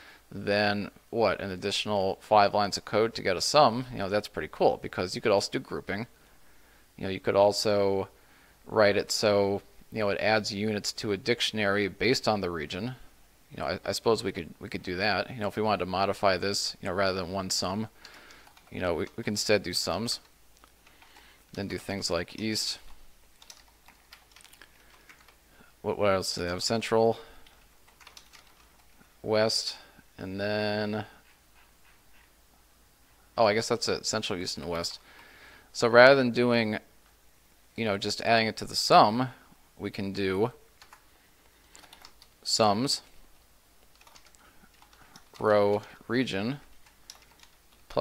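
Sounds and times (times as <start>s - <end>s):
faint keyboard typing: 17.9s - 25.7s, 27.2s - 29.2s, 40.8s - 42.5s, 43.8s - 48.0s.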